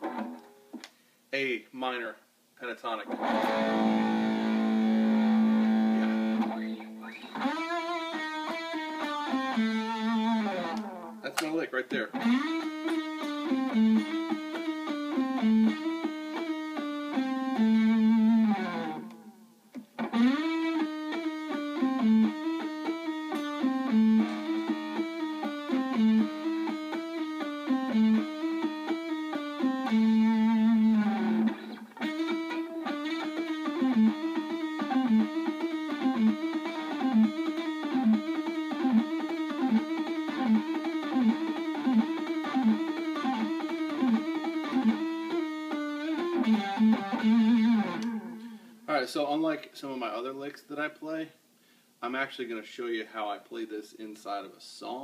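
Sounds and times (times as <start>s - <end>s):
electric guitar lick with bends: 0.0s - 1.0s, 3.1s - 48.8s.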